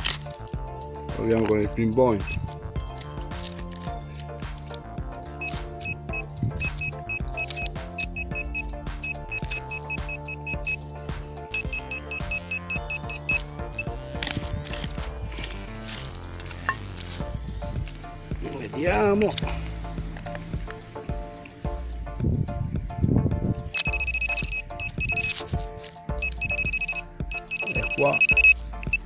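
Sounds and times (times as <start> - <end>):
background music: 0.0 - 29.0
metal detector pinpointer beeping: 2.2 - 3.0, 5.3 - 10.9, 11.5 - 16.8, 23.7 - 25.5, 26.2 - 29.0.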